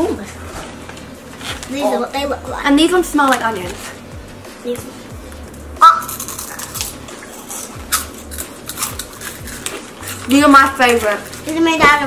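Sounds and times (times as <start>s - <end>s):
background music with steady beat: 0.0s - 12.0s
crunchy snacks being chewed: 6.0s - 11.5s.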